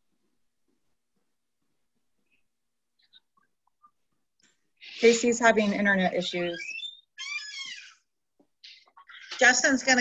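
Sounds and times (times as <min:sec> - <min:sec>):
high-pitched animal-like cry: 0:06.5 - 0:08.1.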